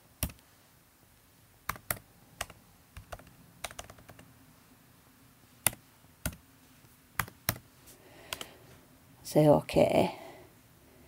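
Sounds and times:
computer keystrokes: 0:00.2 - 0:00.4, 0:01.7 - 0:04.2, 0:05.6 - 0:06.4, 0:07.2 - 0:07.6.

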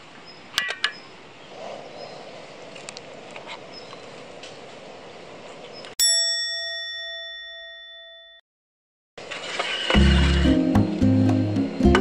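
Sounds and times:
light outdoor background noise: 0:00.0 - 0:06.4
bell-like ding: 0:06.0 - 0:08.4.

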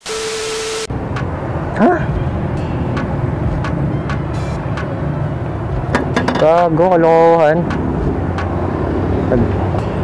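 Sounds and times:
street traffic hum: 0:00.8 - 0:10.0.

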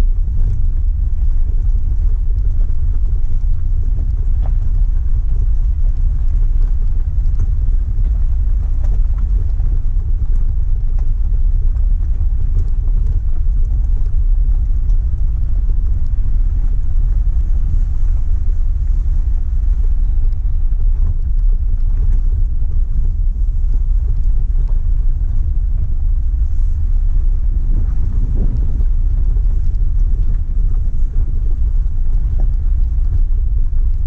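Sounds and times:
engine rumble: 0:00.0 - 0:34.0
wind on microphone: 0:00.0 - 0:34.0.

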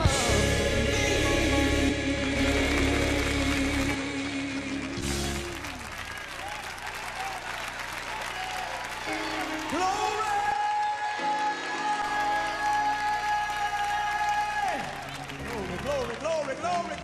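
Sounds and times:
gospel choir singing: 0:00.0 - 0:05.6, 0:10.2 - 0:13.8
congregation clapping and applause: 0:01.9 - 0:17.0.

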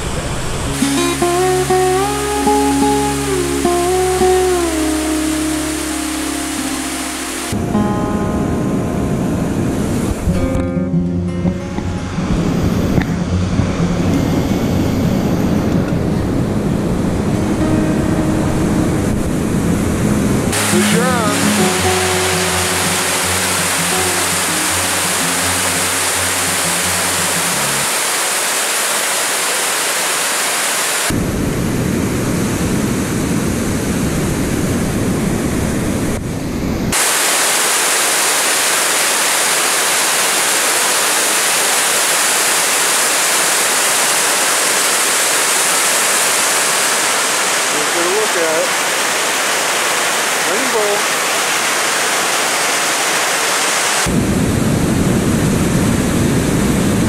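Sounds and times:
water rushing over dam spillway: 0:00.0 - 0:07.6, 0:20.2 - 0:31.2, 0:36.9 - 0:57.0.

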